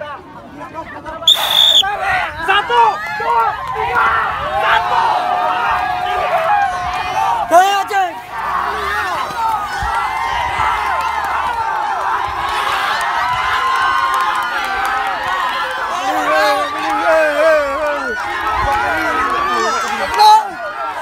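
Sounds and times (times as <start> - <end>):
crowd shouting and cheering: 1.2 - 21.0
loud shout: 1.3 - 21.0.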